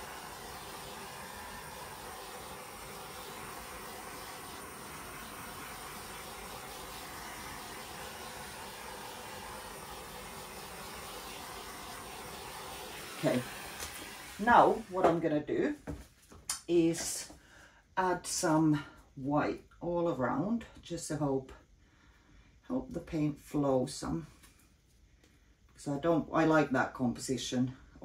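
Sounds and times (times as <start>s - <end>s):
handheld torch flame hissing: 0.0s - 15.4s.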